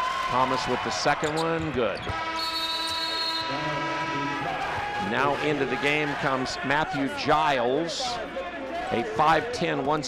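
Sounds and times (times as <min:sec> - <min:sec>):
arena horn blast: 0:02.1 - 0:05.9.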